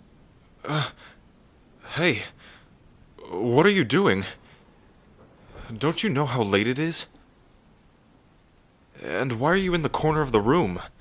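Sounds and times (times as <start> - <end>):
faint rain falling: 0.0 - 11.0.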